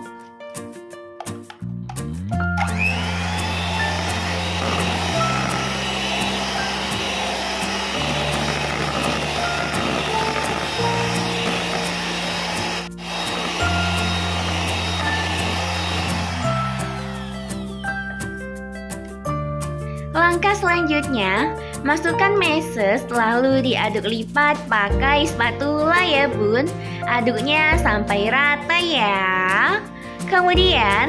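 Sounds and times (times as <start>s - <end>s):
electric hand mixer running: 2.6s - 18.5s.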